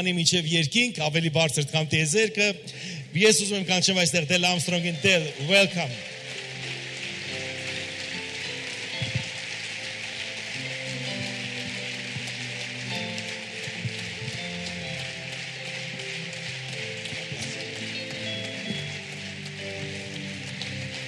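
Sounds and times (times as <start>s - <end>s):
congregation applauding: 2.7s - 21.0s
electronic keyboard chords: 4.6s - 21.0s.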